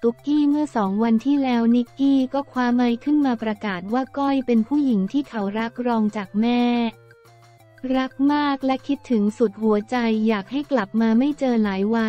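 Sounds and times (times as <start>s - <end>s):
woman narrating: 0.0s - 7.0s, 7.8s - 12.0s
faint background music: 0.0s - 12.0s.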